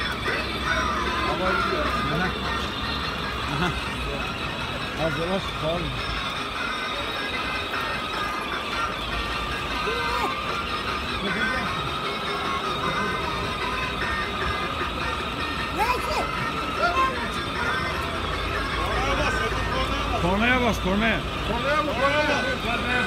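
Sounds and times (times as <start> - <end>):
music from toy car speaker: 0.0 - 23.0
street rumble: 0.0 - 23.0
voices: 0.0 - 23.0.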